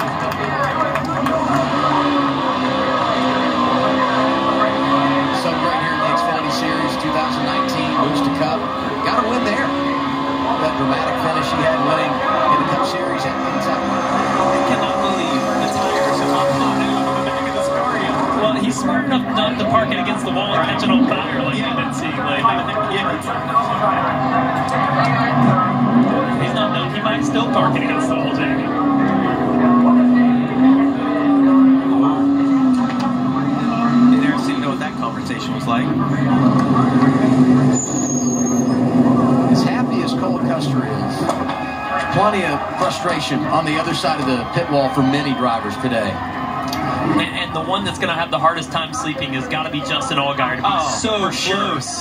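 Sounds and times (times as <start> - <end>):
race car engine at high revs: 0.0 - 52.0.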